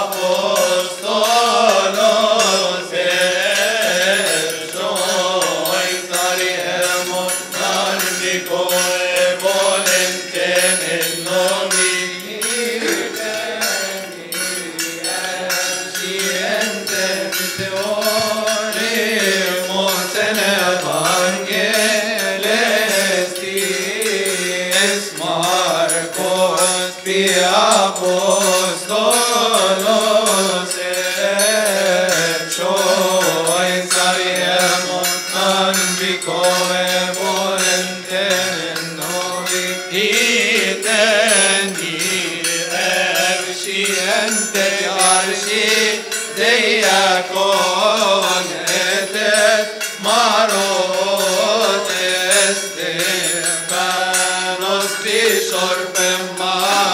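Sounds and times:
men chanting a hymn: 0.0s - 56.9s.

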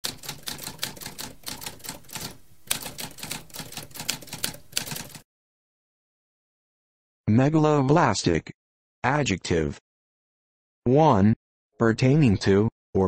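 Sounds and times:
typewriter keys clacking: 0.0s - 5.2s.

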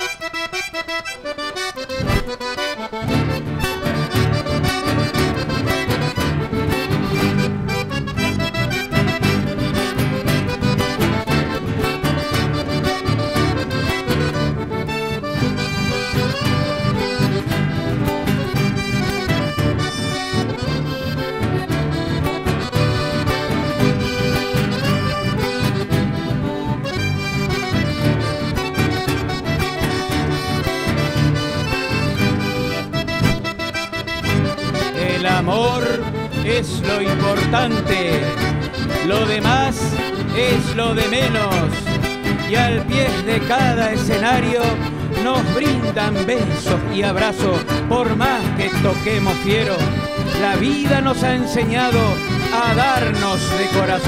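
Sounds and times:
accordion: 0.0s - 54.0s
acoustic guitars: 0.0s - 54.0s
bass guitar: 0.0s - 54.0s.

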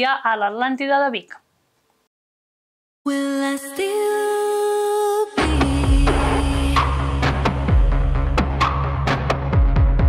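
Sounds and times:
heavy bass and beat: 5.4s - 10.0s.

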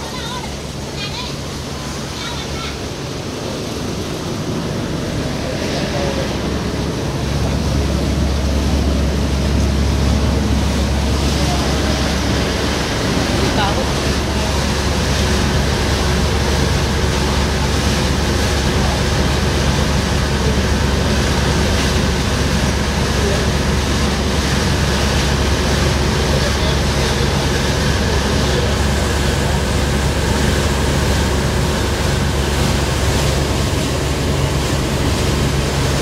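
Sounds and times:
boat engine droning: 0.0s - 36.0s
churning wake rushing: 0.0s - 36.0s
wind: 0.0s - 36.0s.

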